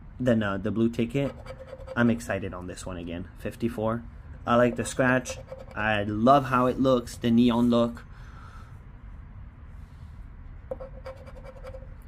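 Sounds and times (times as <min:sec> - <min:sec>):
scratch-off ticket scraping: 0:01.2 - 0:02.2, 0:04.7 - 0:05.8.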